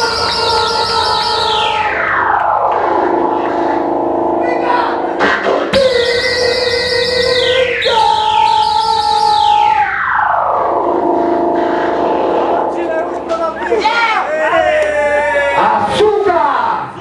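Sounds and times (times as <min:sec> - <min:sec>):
synthesizer pitch sweeps: 0:00.0 - 0:14.3
synthesizer drone: 0:00.0 - 0:15.6.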